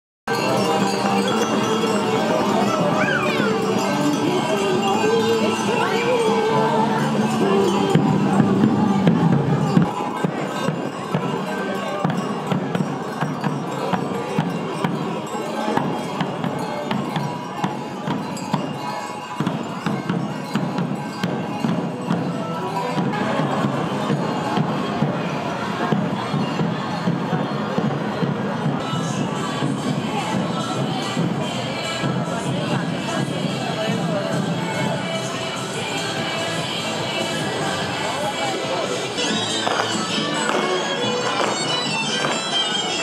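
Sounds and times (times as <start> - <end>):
crowd chatter: 0.3 - 43.0
traditional folk music: 0.3 - 43.0.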